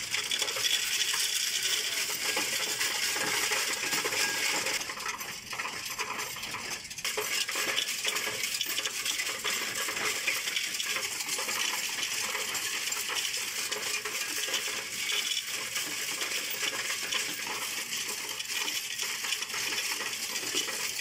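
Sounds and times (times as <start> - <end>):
coins rattling through machine: 0.0 - 21.0.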